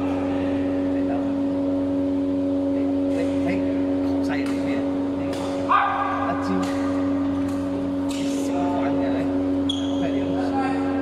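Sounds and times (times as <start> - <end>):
hum of hall machinery: 0.0 - 11.0
racket hitting shuttlecock: 5.3 - 7.6
short pitched squeal: 9.6 - 10.2.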